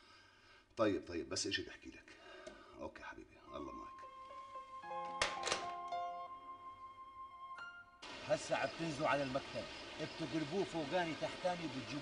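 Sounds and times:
background music: 3.4s - 10.3s.

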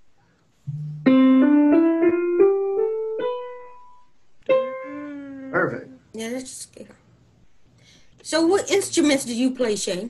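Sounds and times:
keyboard playing a scale: 0.7s - 5.2s.

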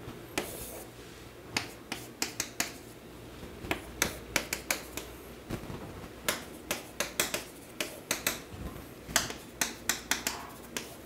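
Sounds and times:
chalk tapping on a chalkboard: 0.4s - 0.8s, 1.6s - 2.9s, 3.7s - 5.1s, 6.3s - 8.5s, 9.1s - 11.0s.

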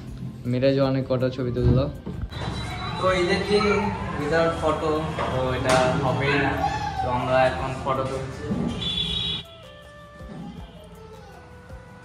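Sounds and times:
people talking: 2.9s - 8.8s.

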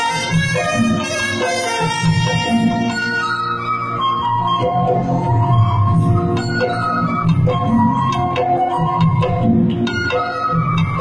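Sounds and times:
bamboo flute melody: 0.0s - 11.0s
tabla drumming: 0.0s - 11.0s.

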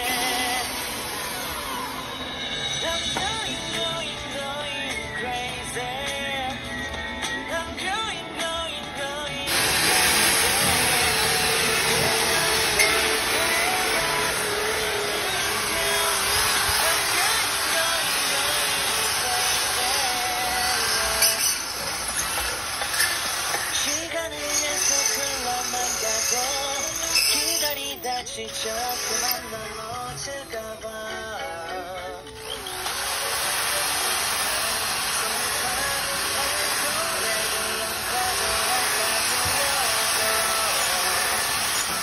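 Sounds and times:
electric drill boring into concrete: 0.0s - 3.8s, 9.5s - 30.4s, 32.2s - 42.0s.

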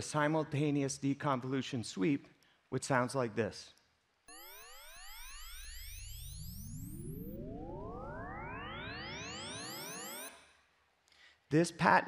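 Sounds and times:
overlapping rising sine sweeps: 4.3s - 10.4s.

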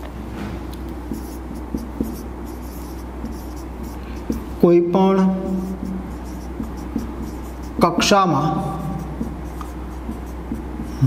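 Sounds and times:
marker scratching on whiteboard: 1.1s - 11.0s
marker tip clicking on board: 9.2s - 10.6s.

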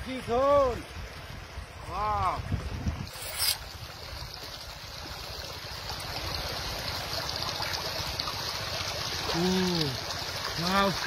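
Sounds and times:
wind rumbling on microphone: 0.0s - 4.8s
shallow river water running: 0.0s - 11.0s.

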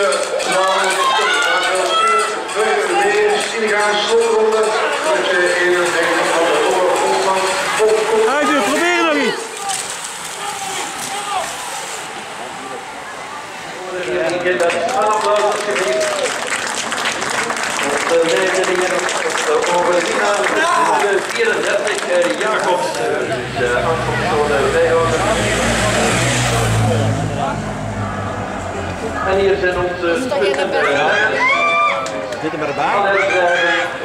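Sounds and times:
bicycles passing on asphalt: 0.0s - 34.0s
faint voices: 0.0s - 34.0s
motorcycle riding past: 23.1s - 29.7s.

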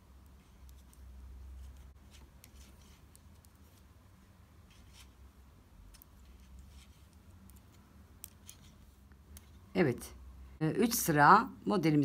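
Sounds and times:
low steady hum: 0.0s - 12.0s
knitting needles clicking: 0.1s - 3.9s, 5.8s - 9.6s.

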